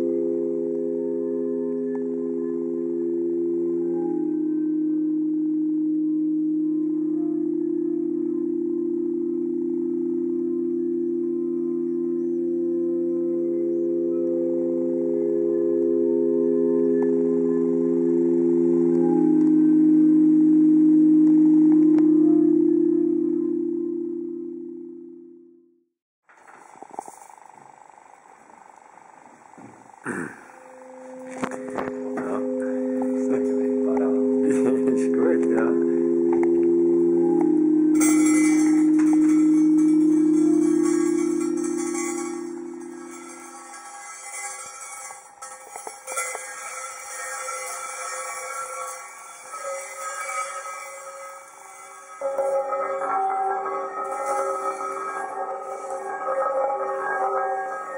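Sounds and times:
higher ringing tone: 0.0 - 25.8, 30.1 - 57.9
stone slabs ringing low tones: 29.6 - 57.9.

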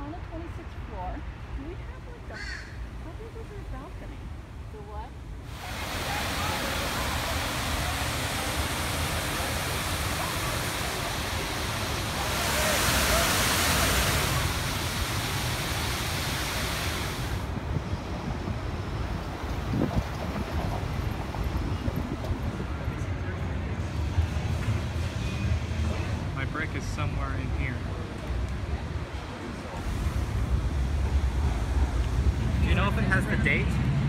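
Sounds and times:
street background noise: 0.0 - 34.0
water splashing down fountain: 5.4 - 17.6.

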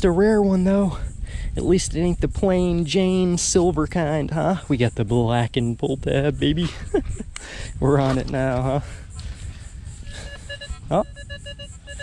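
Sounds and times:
metal detector short beeps: 10.0 - 12.0.

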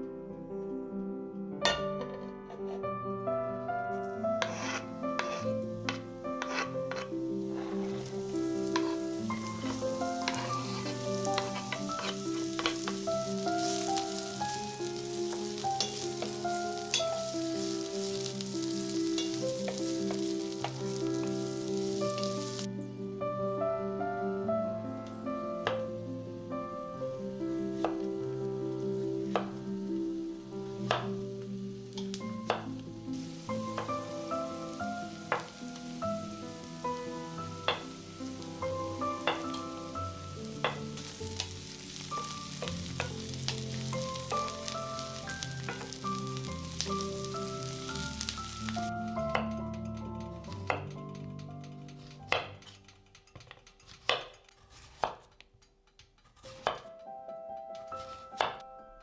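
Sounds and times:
soft background music: 0.0 - 54.1, 56.3 - 59.0
onions sizzling in a frying pan: 3.7 - 22.7, 24.8 - 55.2
wooden spatula stirring: 4.3 - 22.7, 33.5 - 36.0, 40.3 - 56.9
knife slicing on cutting board: 4.4 - 5.5, 6.4 - 7.1.

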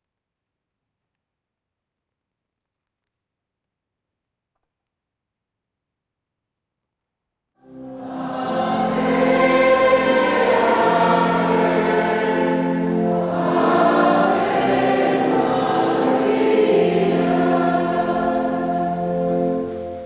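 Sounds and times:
choir singing: 7.7 - 20.0.

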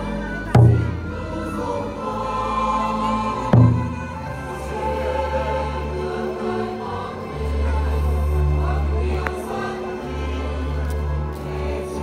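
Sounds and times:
choir singing a hymn: 0.0 - 12.0
instrumental accompaniment: 0.0 - 12.0.

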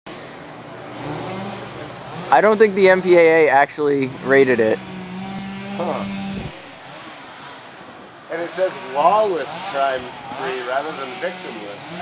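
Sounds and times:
motor vehicle running nearby: 0.1 - 12.0
outdoor traffic noise: 0.1 - 12.0.

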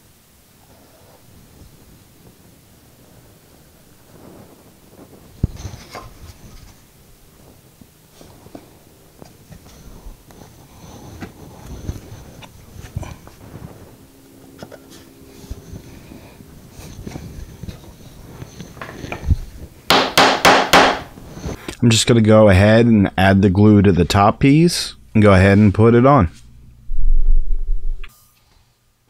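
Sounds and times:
loud sharp wooden knocks: 19.9 - 21.1.

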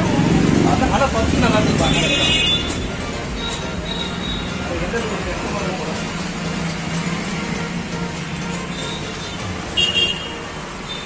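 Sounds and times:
street traffic noise: 0.0 - 11.0.

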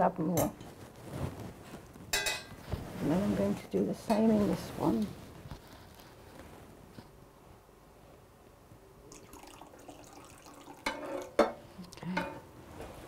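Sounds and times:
liquid trickling into metal pan: 9.1 - 11.4.

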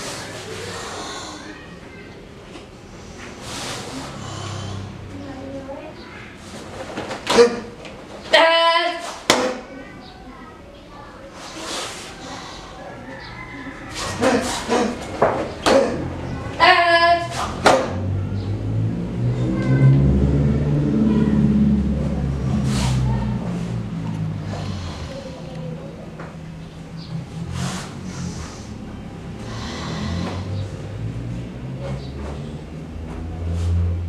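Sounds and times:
vehicle engine revving: 17.3 - 25.7, 26.6 - 34.0.

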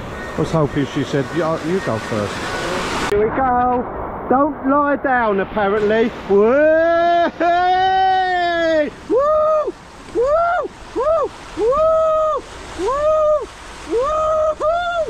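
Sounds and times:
water rushing along slide: 0.0 - 15.0
person crying out and yelping: 7.3 - 15.0.

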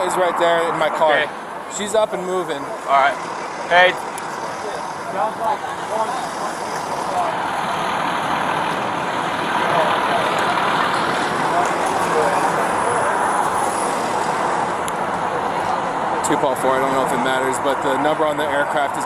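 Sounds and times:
faint voices: 0.0 - 19.0
fire trucks idling: 0.0 - 19.0
road traffic noise: 0.0 - 19.0.

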